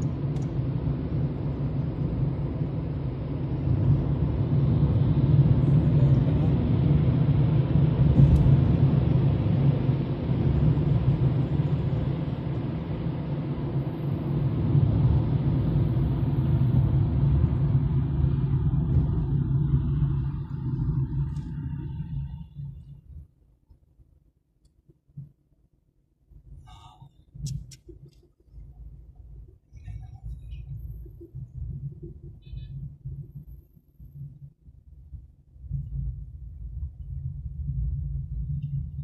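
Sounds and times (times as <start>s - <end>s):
car interior driving rumble: 0.0s - 24.2s, 26.3s - 39.0s.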